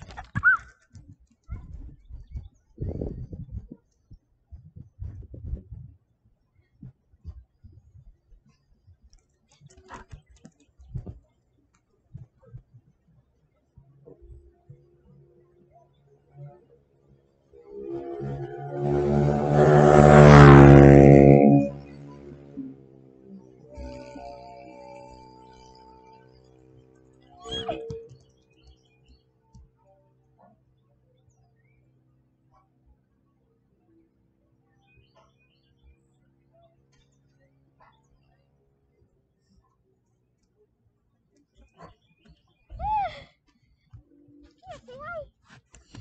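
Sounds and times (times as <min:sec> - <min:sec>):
motor vehicle driving past: 0:16.3 - 0:28.6
dog whining: 0:27.4 - 0:28.0.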